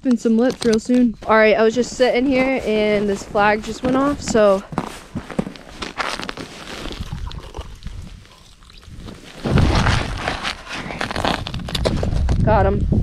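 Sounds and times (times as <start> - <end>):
clothing rustle and handling noise: 0.2 - 11.7
footsteps crunching in snow: 1.0 - 12.0.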